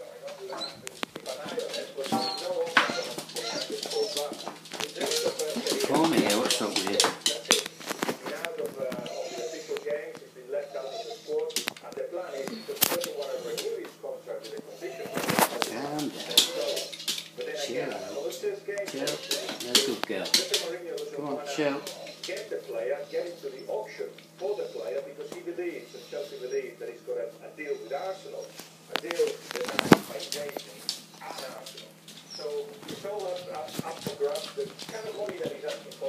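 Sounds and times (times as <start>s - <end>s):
dog whimpering: 0.0s - 7.4s, 8.8s - 10.0s, 10.6s - 11.6s, 12.2s - 13.8s, 14.6s - 25.1s, 27.5s - 28.7s, 31.2s - 36.0s
broadcast voice talking: 0.0s - 36.0s.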